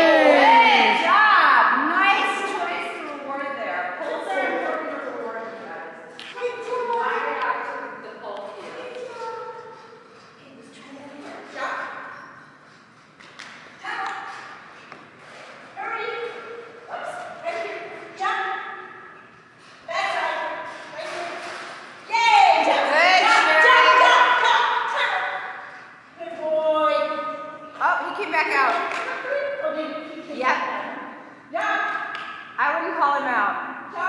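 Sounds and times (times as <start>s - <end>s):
people talking in a hall: 0.0s - 34.0s.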